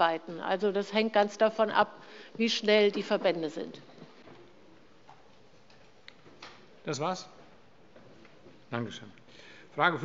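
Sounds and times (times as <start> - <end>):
man speaking: 8.7 - 10.0.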